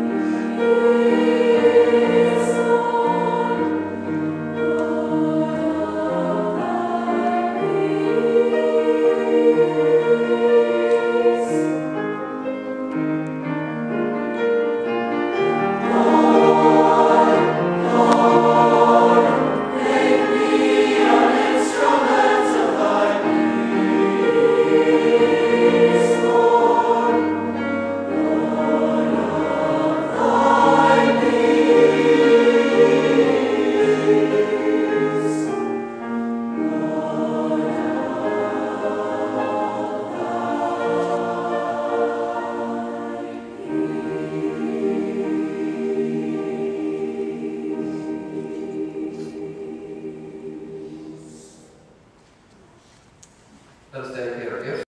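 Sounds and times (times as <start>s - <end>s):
choir singing an anthem: 0.0s - 12.4s, 14.4s - 52.2s.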